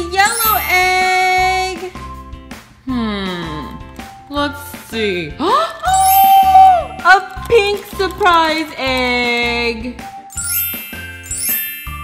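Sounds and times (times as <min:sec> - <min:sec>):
chime music jingle: 0:00.0 - 0:01.6, 0:05.9 - 0:07.0, 0:10.3 - 0:12.0.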